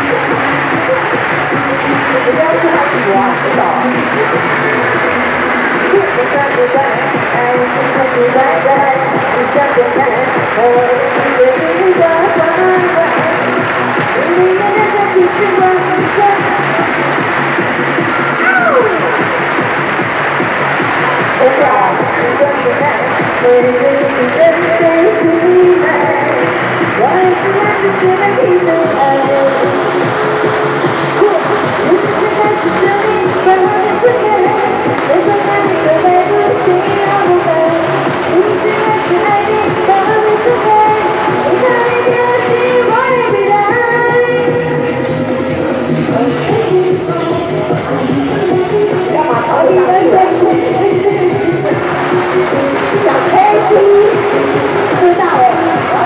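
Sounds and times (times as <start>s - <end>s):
person singing: 0.0s - 19.9s, 21.4s - 56.0s
electronic backing track with beat: 0.0s - 56.0s
pop song over sound system: 0.0s - 56.0s.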